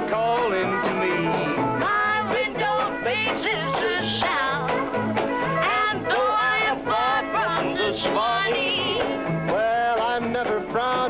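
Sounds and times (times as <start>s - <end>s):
country band playing: 0.0s - 11.0s
woman singing: 1.1s - 4.8s, 5.5s - 9.2s.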